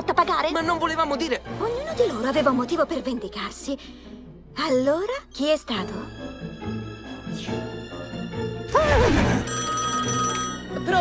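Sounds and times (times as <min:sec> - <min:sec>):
background music: 0:00.0 - 0:11.0
desk telephone ringing: 0:09.4 - 0:10.7.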